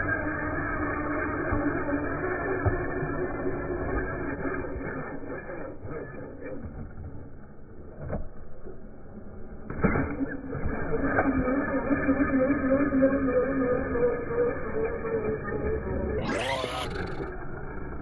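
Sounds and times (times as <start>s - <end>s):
rc truck motor and tyre noise: 0.0s - 18.0s.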